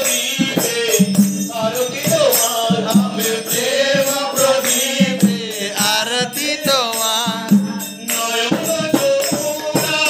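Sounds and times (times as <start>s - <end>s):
drum strokes: 0.0s - 10.0s
hand cymbals ringing: 0.0s - 10.0s
person singing devotional song: 0.0s - 10.0s.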